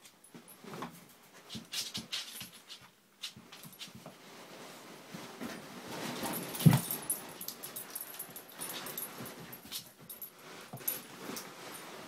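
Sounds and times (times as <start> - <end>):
puppies scuffling and bumping: 0.0 - 12.0.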